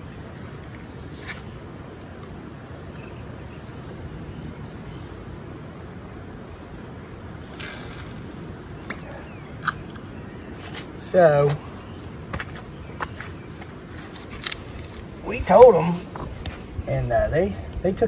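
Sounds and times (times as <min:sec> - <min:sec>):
low wind rumble: 0:00.0 - 0:18.0.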